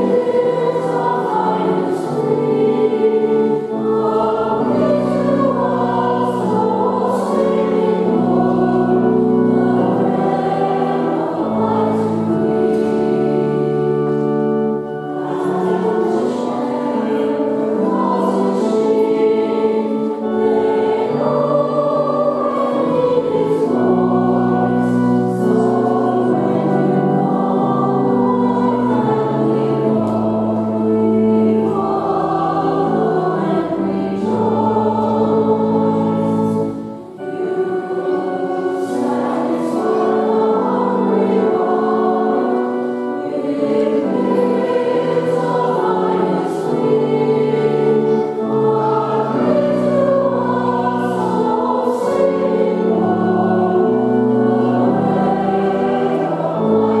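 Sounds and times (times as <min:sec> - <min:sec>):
choir singing: 0:00.0 - 0:57.0
low held accompaniment notes: 0:00.0 - 0:57.0.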